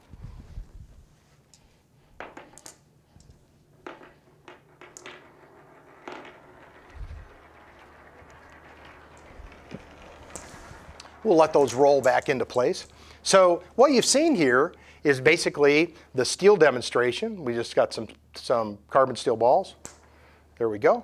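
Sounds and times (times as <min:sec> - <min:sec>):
steel balls clicking: 0:02.4 - 0:14.8.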